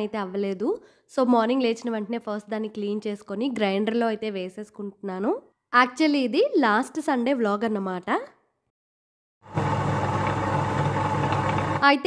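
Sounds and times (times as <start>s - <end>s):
wet grinder humming: 9.5s - 11.8s.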